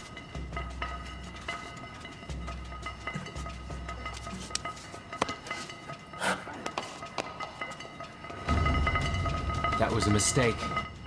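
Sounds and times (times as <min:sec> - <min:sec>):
tense film score held tones: 0:00.0 - 0:11.0.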